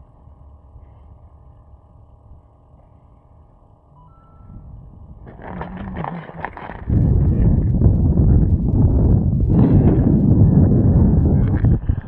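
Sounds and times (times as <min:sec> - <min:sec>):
wind rumble on microphone: 0:04.4 - 0:12.0
rustling scraping handling noise: 0:05.2 - 0:06.9.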